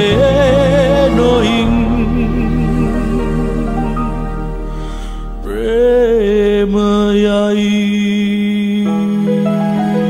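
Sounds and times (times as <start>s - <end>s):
man singing a long note: 0.0s - 4.2s, 5.0s - 9.4s
soft sustained accompaniment: 0.0s - 8.0s.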